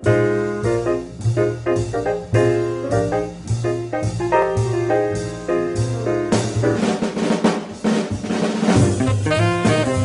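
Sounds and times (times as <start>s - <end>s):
jazz band playing: 0.0s - 10.0s
jazz drum break: 0.0s - 10.0s.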